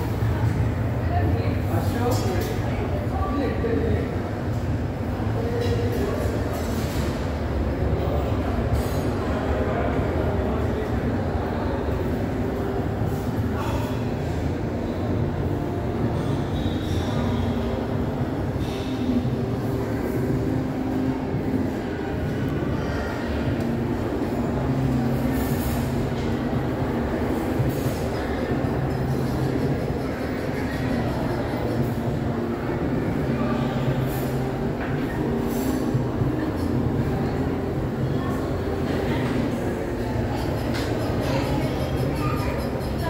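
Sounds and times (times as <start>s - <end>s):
faint voices: 0.0s - 43.0s.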